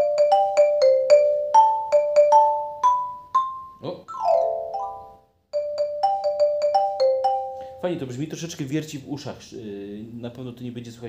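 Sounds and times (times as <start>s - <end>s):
xylophone notes: 0.0s - 7.8s.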